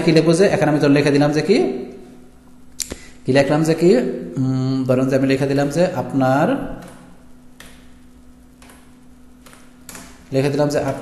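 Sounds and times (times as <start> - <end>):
man speaking: 0.0 - 2.0, 3.2 - 6.9, 10.3 - 11.0
sharp click: 2.8 - 3.0.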